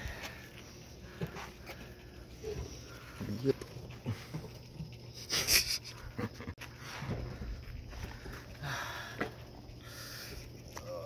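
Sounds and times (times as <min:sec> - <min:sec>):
person breathing hard: 0:00.0 - 0:03.1, 0:07.9 - 0:10.6.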